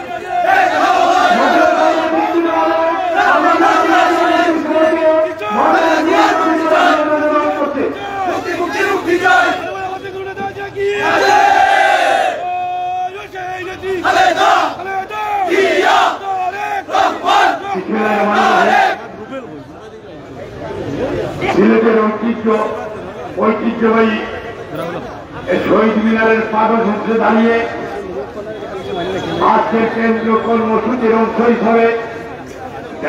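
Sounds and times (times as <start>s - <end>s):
crowd chanting slogans: 0.0s - 7.3s, 8.2s - 10.1s, 10.9s - 12.4s, 13.7s - 19.3s.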